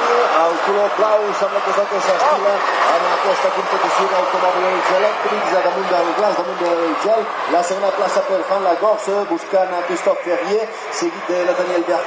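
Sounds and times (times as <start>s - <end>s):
man commentating over loudspeakers: 0.0s - 12.0s.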